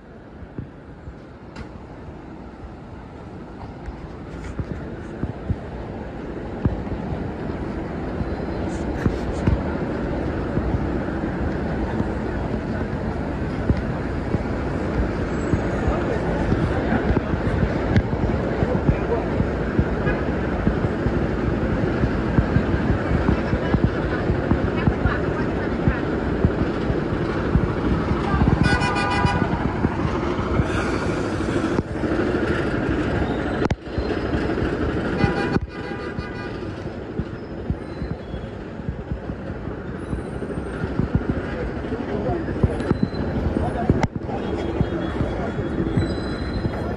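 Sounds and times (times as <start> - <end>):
passers-by talking: 0.0 - 46.9
traffic noise: 0.0 - 46.9
vehicle horn: 28.6 - 29.5, 35.2 - 36.6.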